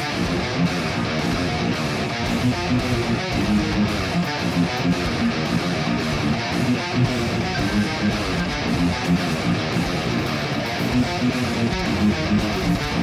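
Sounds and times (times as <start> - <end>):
distorted electric guitar riff: 0.0 - 13.0.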